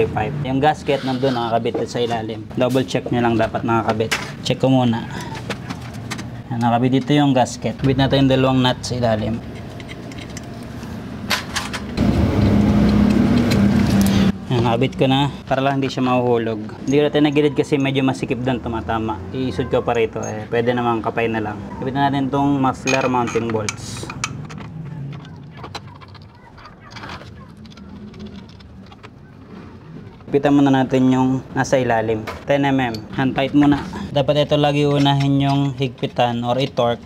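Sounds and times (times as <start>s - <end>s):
metal bolt clicks and taps: 22.9s - 26.3s.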